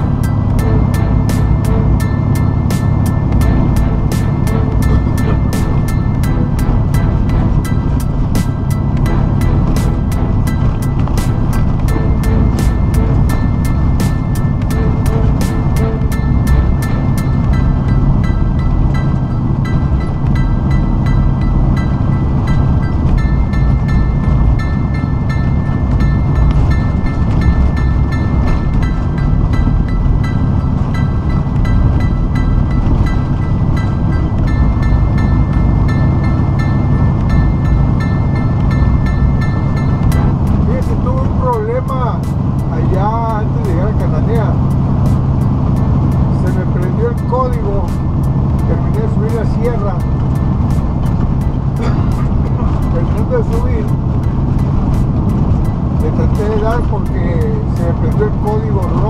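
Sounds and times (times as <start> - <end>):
truck engine and tyres droning: 0.0 - 59.0
voice with music: 0.0 - 59.0.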